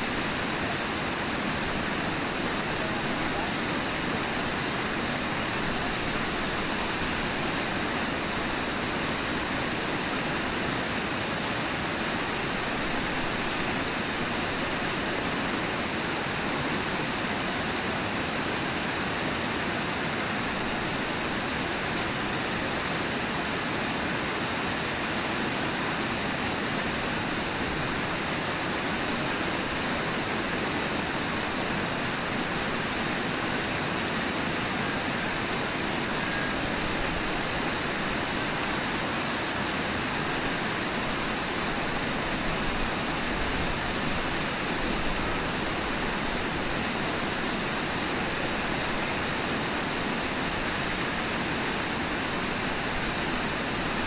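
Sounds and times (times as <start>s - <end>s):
river water rushing: 0.0s - 54.0s.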